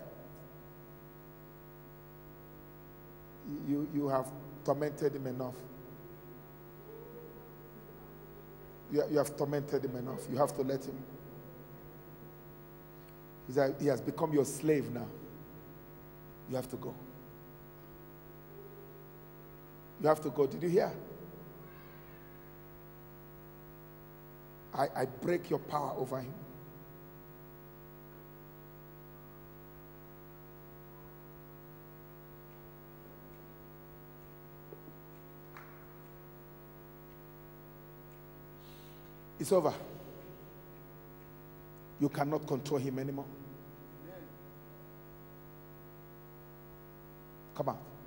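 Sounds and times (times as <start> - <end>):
electrical mains hum: 0.0 - 48.0
faint higher sound: 6.0 - 8.9, 18.4 - 19.2.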